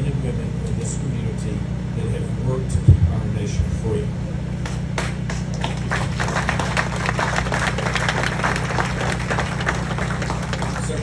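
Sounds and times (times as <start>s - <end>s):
steady low hum: 0.0s - 11.0s
audience applauding: 4.6s - 11.0s.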